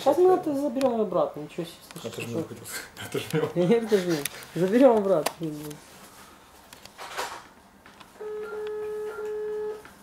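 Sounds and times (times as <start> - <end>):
telephone signal beep: 8.2 - 9.8.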